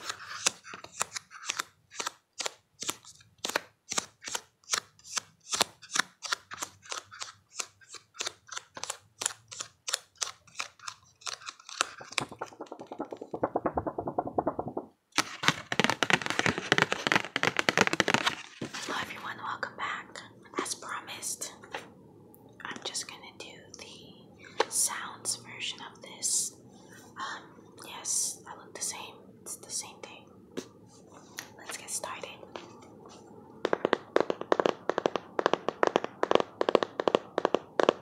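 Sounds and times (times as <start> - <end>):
cards flicked through: 8.8 - 18.5.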